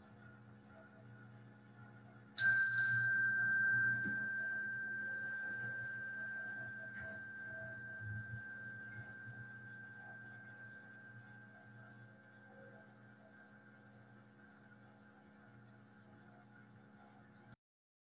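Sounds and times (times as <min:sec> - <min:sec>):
meditation bell ringing: 0:02.4 - 0:12.7.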